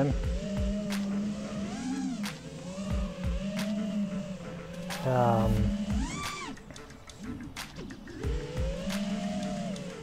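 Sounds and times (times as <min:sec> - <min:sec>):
drone motors and propellers whining: 0:00.0 - 0:10.0.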